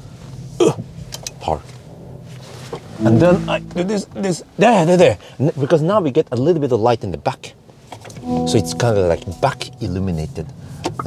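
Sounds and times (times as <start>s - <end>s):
man speaking: 3.0s - 4.4s, 8.5s - 10.4s
low steady hum: 3.0s - 4.8s, 8.2s - 10.8s.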